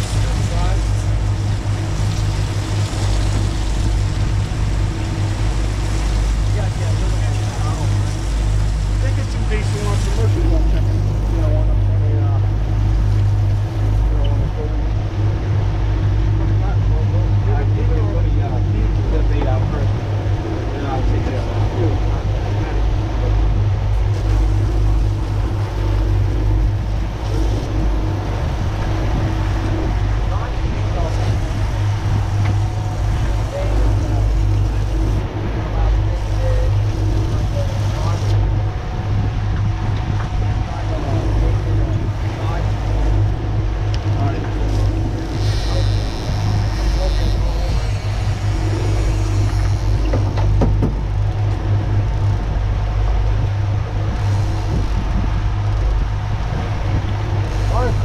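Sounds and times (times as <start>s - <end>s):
outboard motors droning: 0.0s - 58.0s
water rushing past hull: 0.0s - 58.0s
wind: 0.0s - 58.0s.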